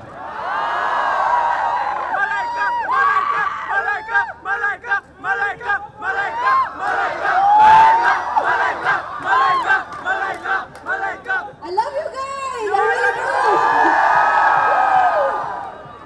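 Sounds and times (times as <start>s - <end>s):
crowd shouting and cheering: 0.0s - 16.0s.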